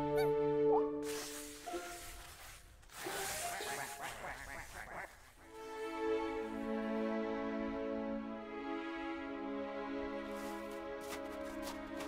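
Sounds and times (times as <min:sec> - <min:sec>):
orchestral bowed strings: 0:05.5 - 0:12.0.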